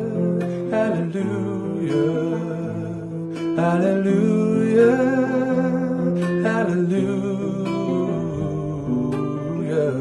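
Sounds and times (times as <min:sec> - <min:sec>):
acoustic guitar chords: 0:00.0 - 0:10.0
man singing long notes: 0:00.0 - 0:10.0.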